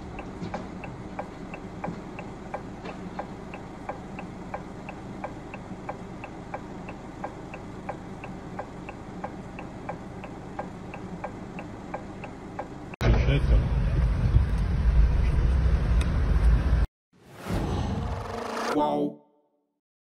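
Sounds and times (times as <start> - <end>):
low engine hum: 0.0 - 16.9
car indicator clicking: 0.1 - 12.9.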